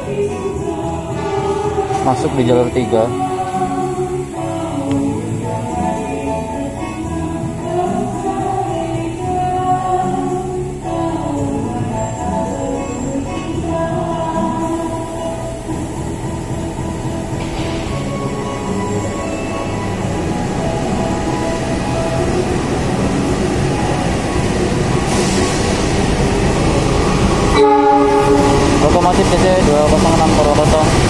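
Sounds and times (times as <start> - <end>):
diesel locomotive rumble: 0.0 - 31.0
train horn steady tones: 27.3 - 31.0.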